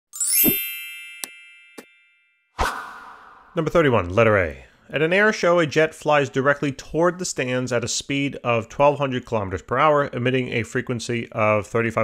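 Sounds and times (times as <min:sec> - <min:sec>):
bright sweeping chime: 0:00.1 - 0:02.6.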